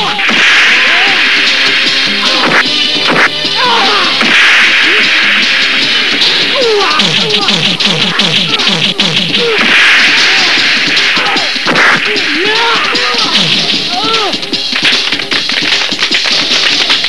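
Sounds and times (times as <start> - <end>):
punch and kick hits: 0.0 - 1.3, 2.3 - 16.8
whip-like swishes: 0.0 - 3.4, 4.2 - 12.2
background music: 0.0 - 17.0.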